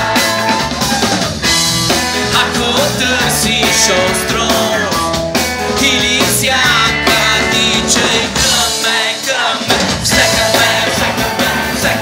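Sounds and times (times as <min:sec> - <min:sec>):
drum kit with cymbals: 0:00.0 - 0:12.0
electric guitar: 0:00.0 - 0:12.0
man singing: 0:02.1 - 0:12.0.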